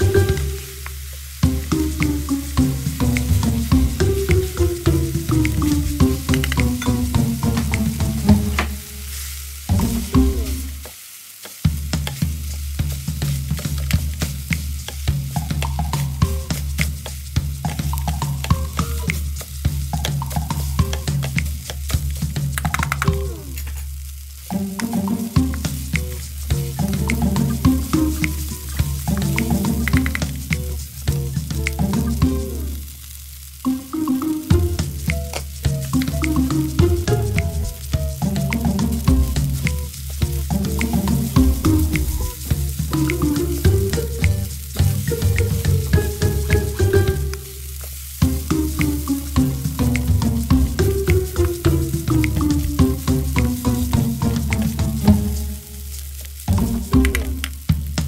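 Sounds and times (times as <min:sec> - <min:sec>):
background music with bass line: 0:00.0 - 0:09.1, 0:09.7 - 0:10.9, 0:11.7 - 0:58.0
rice sizzling in a pan: 0:00.0 - 0:58.0.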